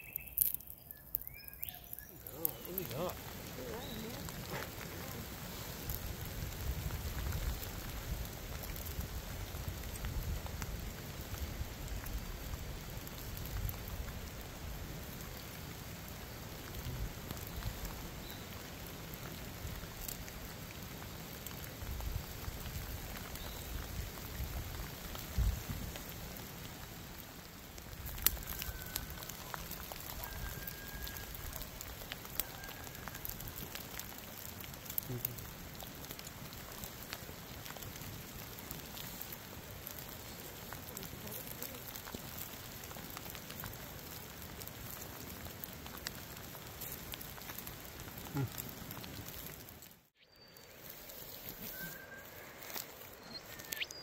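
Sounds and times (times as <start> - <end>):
campfire crackling: 0.0 - 54.0
light rain pattering: 0.0 - 54.0.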